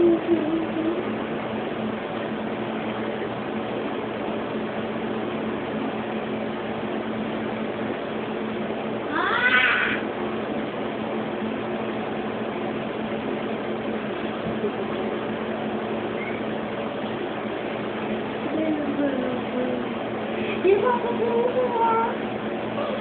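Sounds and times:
steady low hum: 0.0 - 23.0
cat meowing: 9.1 - 10.0.

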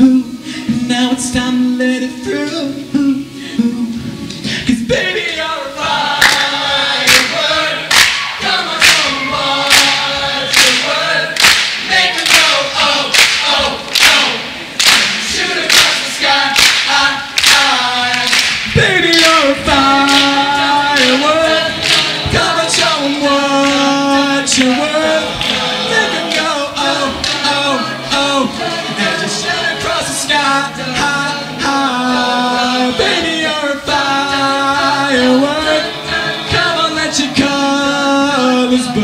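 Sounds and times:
male a cappella group singing: 0.0 - 39.0
hand claps: 6.2 - 6.5, 7.1 - 20.4, 21.0 - 23.0, 23.6 - 23.9, 25.4 - 25.6, 26.3 - 26.5, 27.2 - 27.5.

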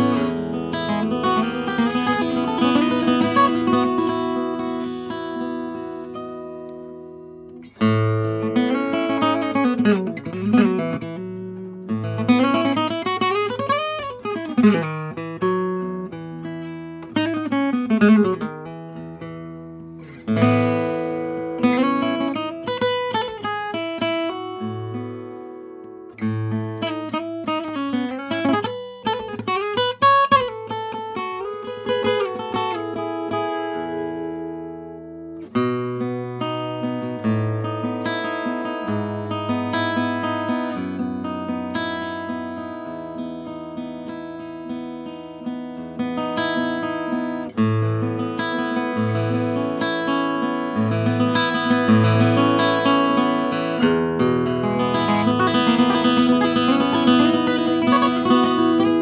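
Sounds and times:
acoustic guitar picked and strummed: 0.0 - 59.0.

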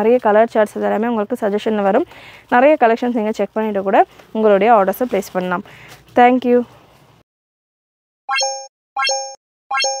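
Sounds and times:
electronic pop blip and chime: 8.3 - 10.0.

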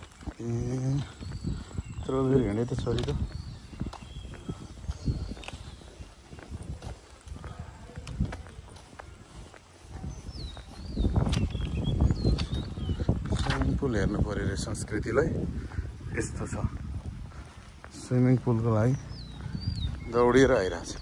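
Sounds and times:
birds chirping: 0.0 - 21.0
footsteps on asphalt: 0.0 - 21.0.

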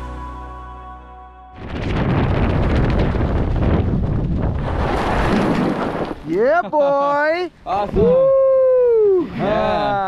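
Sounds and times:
background music: 0.0 - 1.6
wind buffeting microphone: 1.6 - 6.2.

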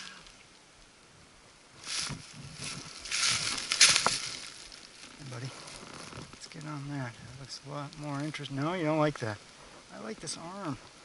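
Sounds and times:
brush crunching and rustling: 1.8 - 11.0.

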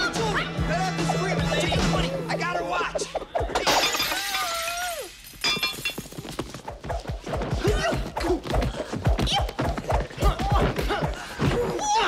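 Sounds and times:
glass shattering crash: 3.6 - 6.4.

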